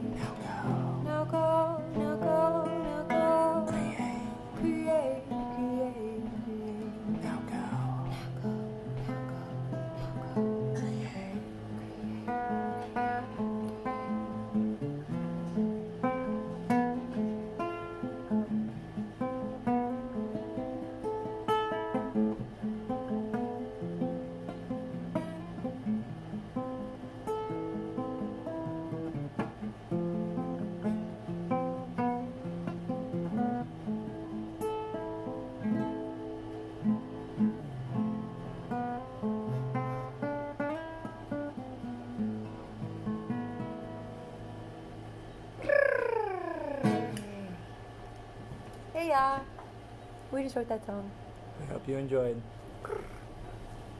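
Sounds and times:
acoustic guitar playing: 0.0s - 53.9s.

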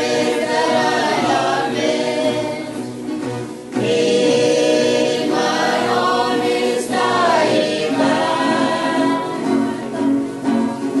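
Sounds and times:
youth choir singing folk song: 0.0s - 11.0s.

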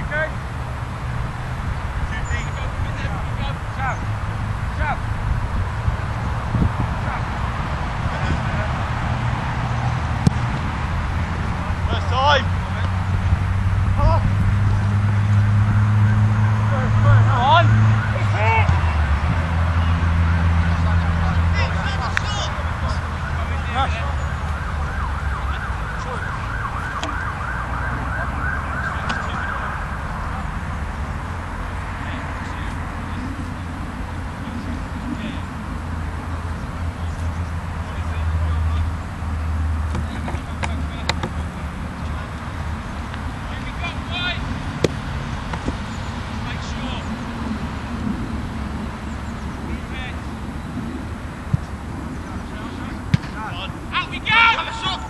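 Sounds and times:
steady low rumble: 0.0s - 15.5s
distant players shouting: 0.0s - 47.7s, 51.4s - 55.0s
emergency siren yelping: 22.4s - 30.9s.

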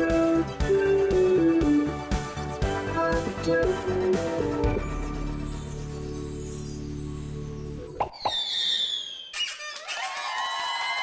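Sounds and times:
falling whistle: 8.1s - 10.6s
squeak: 8.4s - 10.0s.

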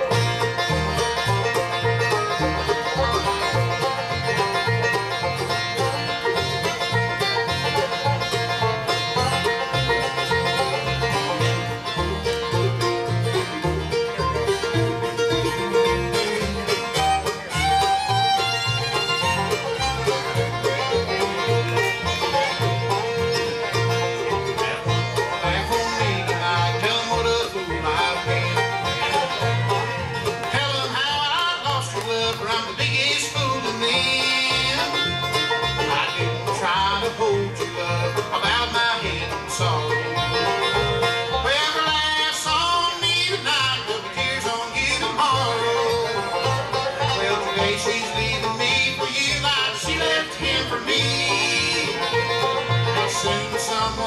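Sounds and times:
acoustic guitar: 0.0s - 54.0s
banjo: 0.0s - 54.0s
fiddle: 0.0s - 54.0s
mandolin: 0.0s - 54.0s
upright bass: 0.0s - 54.0s.

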